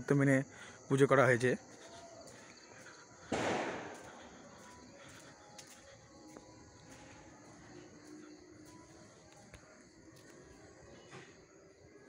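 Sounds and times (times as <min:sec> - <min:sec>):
faint background noise: 0:00.0 - 0:12.0
firecracker bang: 0:03.3 - 0:04.3.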